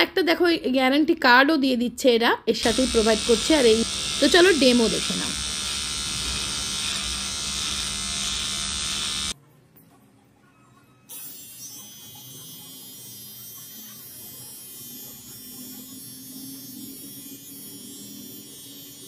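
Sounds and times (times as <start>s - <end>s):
electric trimmer buzzing: 2.6s - 9.4s, 11.1s - 19.0s.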